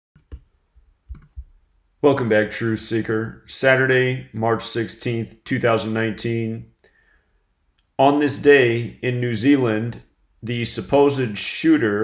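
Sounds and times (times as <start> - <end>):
faint clicks and knocks: 0.2 - 1.6.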